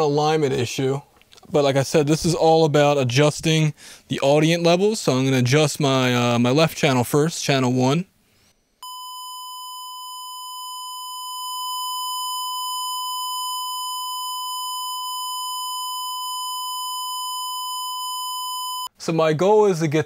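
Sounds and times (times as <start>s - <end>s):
steady test tone: 8.8s - 18.9s.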